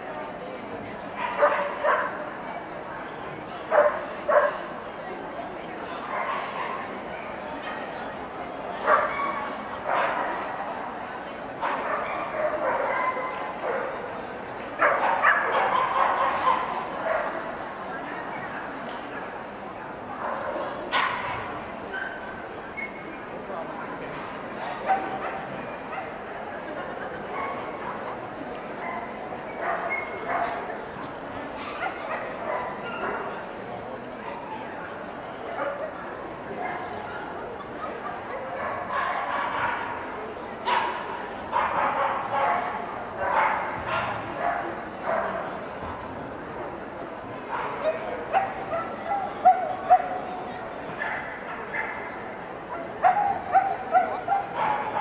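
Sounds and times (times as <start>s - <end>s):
crowd chatter: 0.0s - 55.0s.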